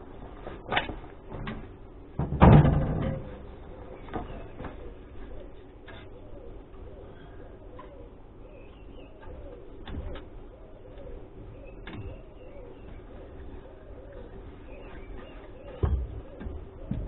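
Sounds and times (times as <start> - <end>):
pigeon cooing: 2.8 - 17.0.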